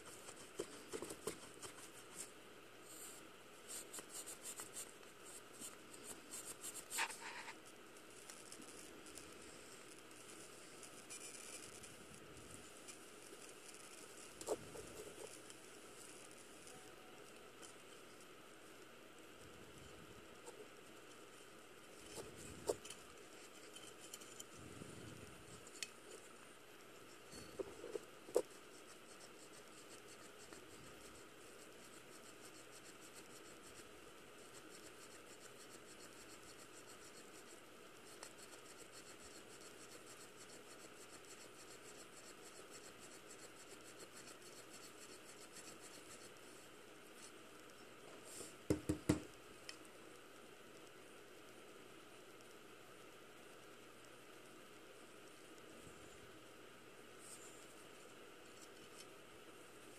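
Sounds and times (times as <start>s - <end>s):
wire brush scratching: 3.8s - 16.7s.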